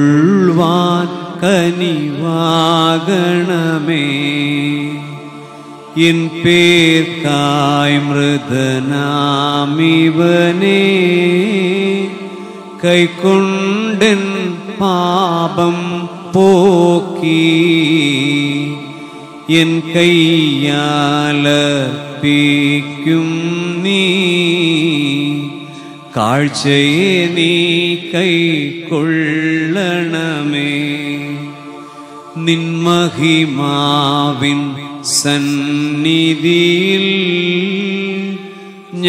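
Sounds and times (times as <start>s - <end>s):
person singing liturgical chant: 0.0s - 39.0s.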